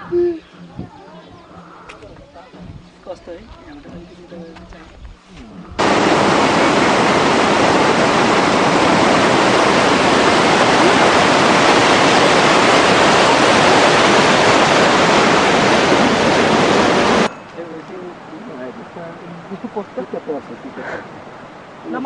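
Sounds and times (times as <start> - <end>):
stream rushing over rapids: 5.8 - 22.0.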